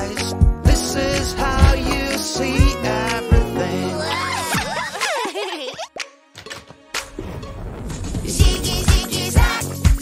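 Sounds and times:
children's music: 0:00.0 - 0:10.0.

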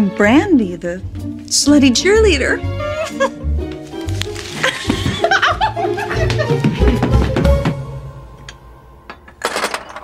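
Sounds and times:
person laughing: 0:02.8 - 0:03.5, 0:04.6 - 0:06.9.

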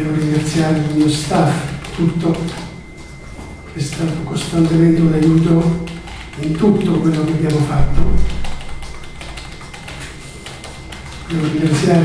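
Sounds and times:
person speaking: 0:00.0 - 0:02.8, 0:03.7 - 0:08.7, 0:11.2 - 0:12.0.

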